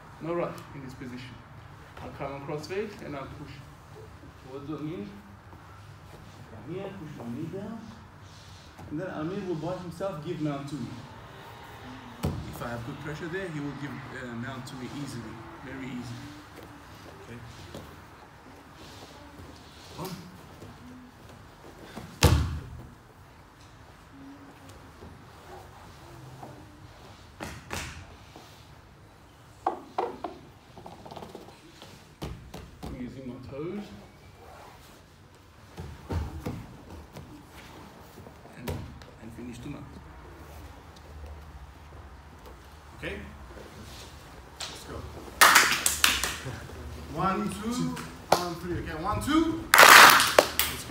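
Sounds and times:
heavy body thump on mat: 22.2s - 22.7s
hand claps: 45.4s - 46.6s, 49.7s - 50.9s.

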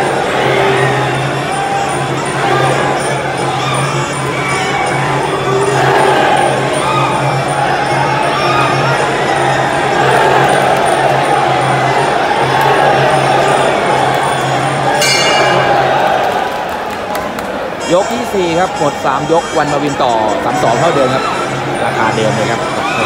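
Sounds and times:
crowd noise: 0.0s - 23.0s
bell ringing: 14.9s - 16.8s
small cymbals clinking: 15.0s - 16.5s.

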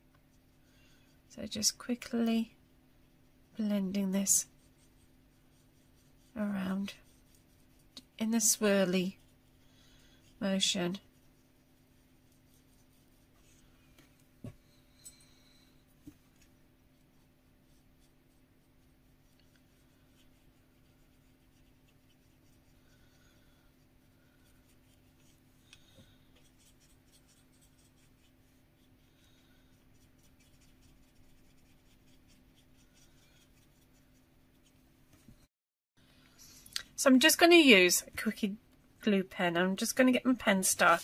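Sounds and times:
paintbrush strokes on card: 0.0s - 35.3s
low room hum: 0.0s - 41.0s.

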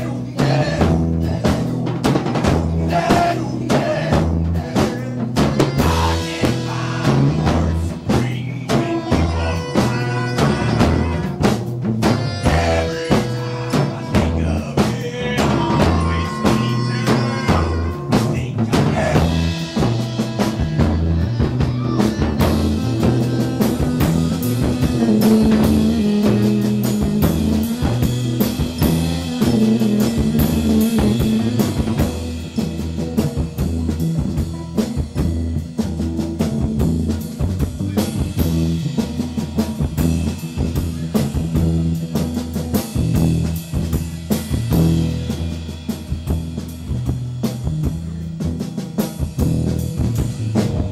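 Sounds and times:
drum kit beating: 0.0s - 50.9s
low bass notes: 0.0s - 50.9s
electric guitar: 5.4s - 45.7s.

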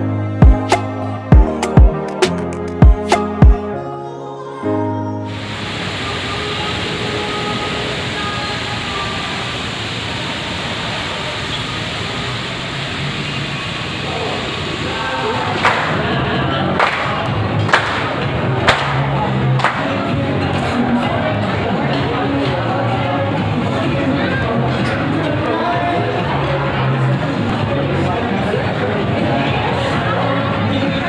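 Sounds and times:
busy restaurant noise: 0.0s - 3.8s, 5.3s - 31.0s
people clapping in time: 15.6s - 20.0s.

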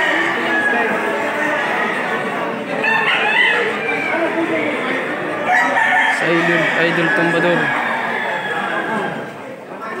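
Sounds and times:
roosters crowing: 0.0s - 9.4s
crowd of men chattering: 0.0s - 10.0s.

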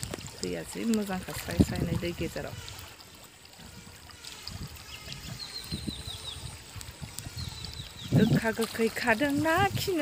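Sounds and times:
faint rush of stream: 0.0s - 10.0s.

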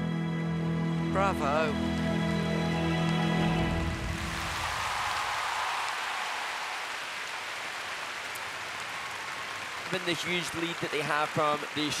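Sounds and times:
program music: 0.0s - 4.3s
crowd applauding and cheering: 1.7s - 12.0s.

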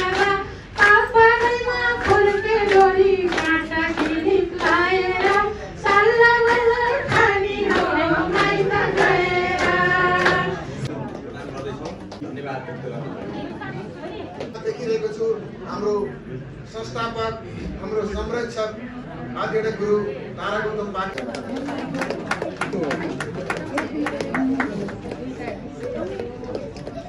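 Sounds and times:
people chattering: 0.0s - 27.0s.

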